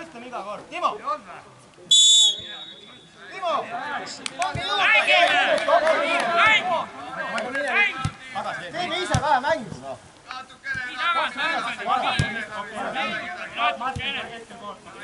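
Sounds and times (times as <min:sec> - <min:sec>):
players shouting: 0:02.2 - 0:09.2, 0:10.5 - 0:14.3.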